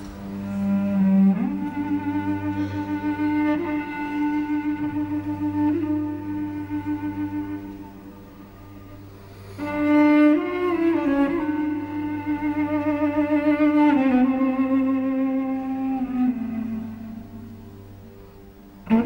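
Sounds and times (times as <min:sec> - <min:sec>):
solo cello melody: 0:00.0 - 0:19.0.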